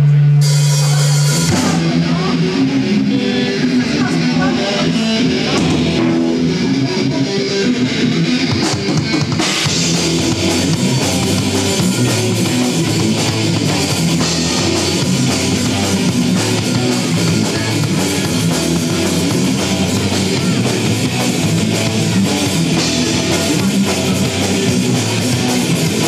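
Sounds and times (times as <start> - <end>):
live rock band playing: 0.3 - 26.0.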